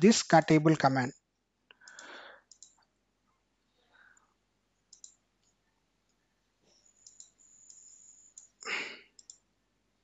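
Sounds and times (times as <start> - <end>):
computer mouse clicking: 1.8 - 2.8, 4.9 - 8.6, 9.2 - 9.5.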